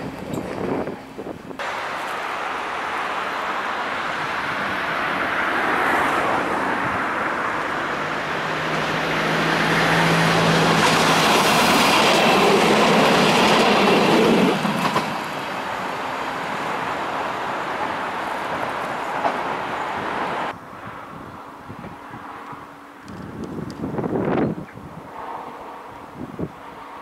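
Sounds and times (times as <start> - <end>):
train passing: 0.0 - 23.2, 24.0 - 27.0
road traffic: 0.0 - 27.0.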